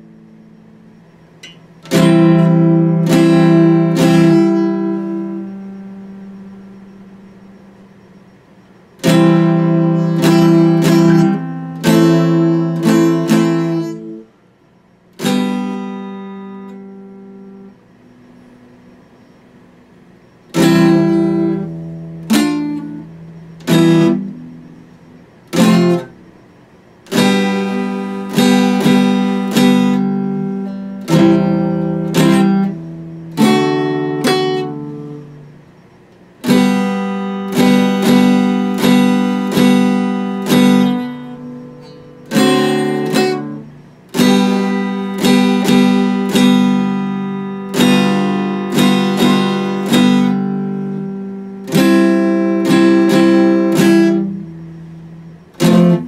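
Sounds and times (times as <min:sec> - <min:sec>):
acoustic guitar strumming: 0:00.0 - 0:56.0.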